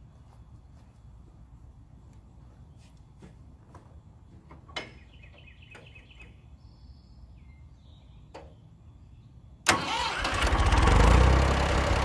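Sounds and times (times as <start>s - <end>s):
birds chirping: 2.2s - 9.7s.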